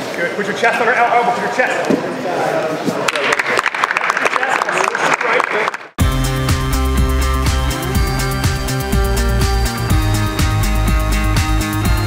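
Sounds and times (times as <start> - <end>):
audience applauding: 3.1 - 6.0
music with regular beat: 6.0 - 12.0.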